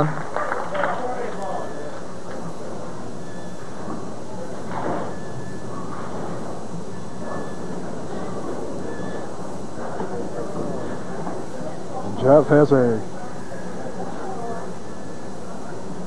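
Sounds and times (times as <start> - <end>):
rumble from bowling lanes: 0.0 - 12.2
crowd chatter: 0.0 - 16.0.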